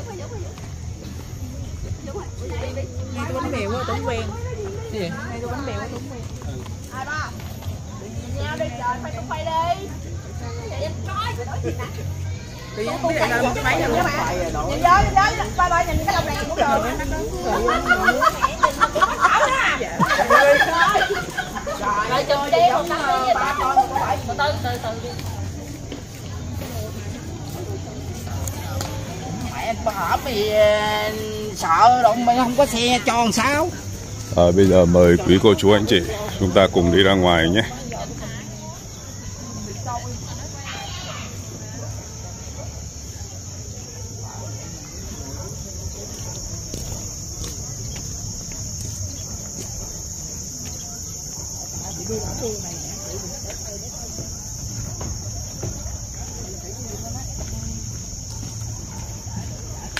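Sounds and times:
distant people chattering: 0.0 - 59.9
faint voices: 0.0 - 59.9
insects droning: 0.0 - 59.9.

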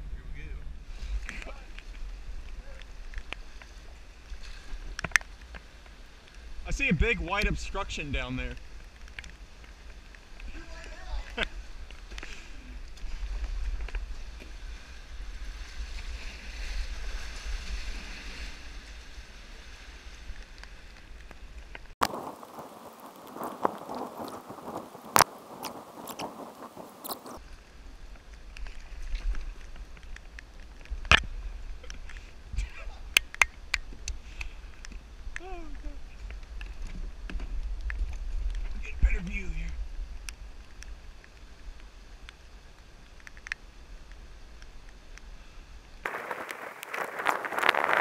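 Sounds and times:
wind rumble on microphone: 0.0 - 48.0.

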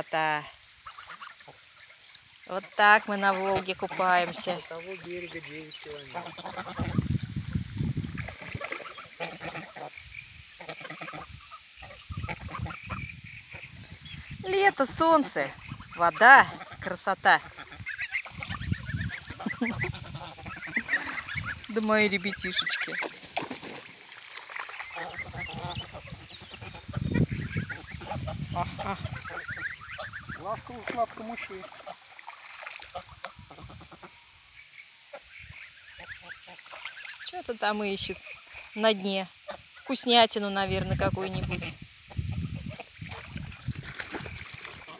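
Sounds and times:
geese honking and gabbling: 0.0 - 44.9.

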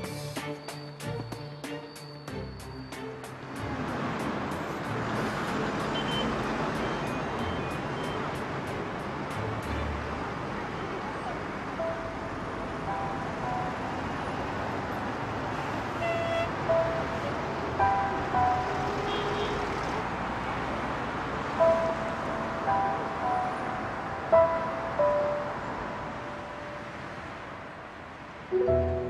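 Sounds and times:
passing cars: 2.3 - 29.0
slow melody of held notes: 11.8 - 14.4, 21.6 - 27.0, 28.5 - 29.0.

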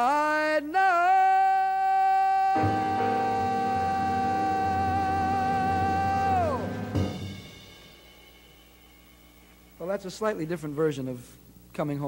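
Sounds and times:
ringing jazz chord: 2.6 - 9.9
drum and cymbal hit: 5.1 - 10.8.

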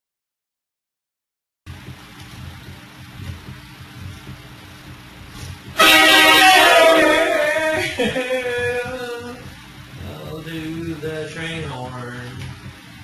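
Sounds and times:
loud train horn blast: 5.8 - 8.1.

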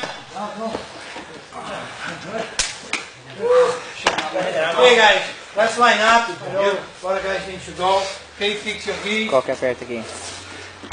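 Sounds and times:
sharp smacks: 2.6 - 3.1.

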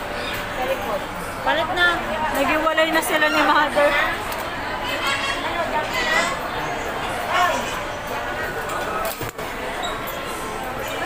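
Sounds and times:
restaurant crowd chatter: 0.0 - 11.0.

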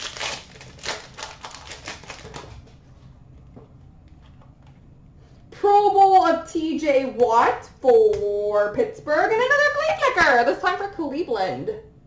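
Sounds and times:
foil wrapper tearing: 0.0 - 2.6
foil crinkling: 0.0 - 2.8.

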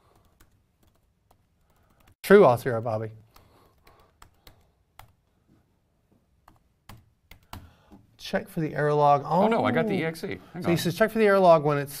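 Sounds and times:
laptop keyboard typing: 0.0 - 2.2, 3.3 - 5.2, 6.4 - 8.0.

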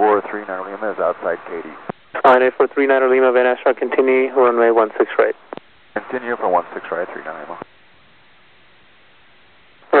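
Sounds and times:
radio voice transmission: 0.0 - 5.4, 6.0 - 7.6
faint radio receiver hiss: 0.0 - 10.0.

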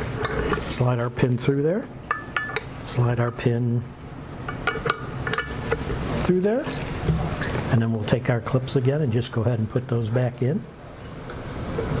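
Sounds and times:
metal pin clinking against metal: 4.5 - 5.8.

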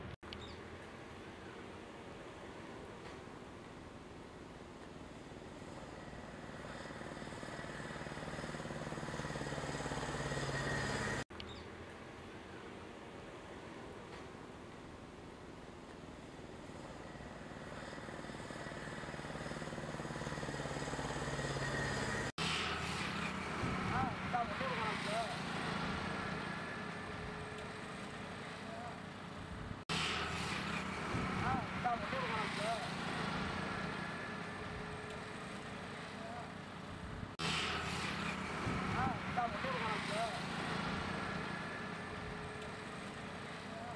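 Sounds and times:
background traffic hum: 0.0 - 43.9
outdoor background noise: 0.0 - 43.9
auto-rickshaw passing: 4.6 - 11.2, 16.1 - 43.9
motorcycle passing: 5.1 - 11.2, 16.4 - 43.9
vehicle engine approaching: 5.3 - 11.3, 16.5 - 43.9.

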